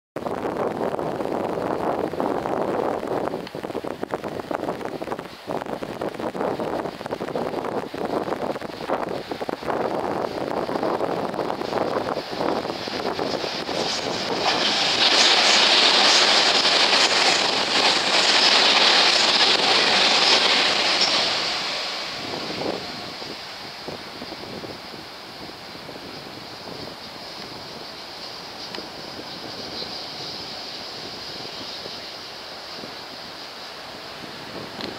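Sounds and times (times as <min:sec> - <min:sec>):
steady hiss: 0:00.8 - 0:34.9
wheel-on-rail hiss: 0:01.6 - 0:34.9
train clattering over bridge: 0:05.0 - 0:34.9.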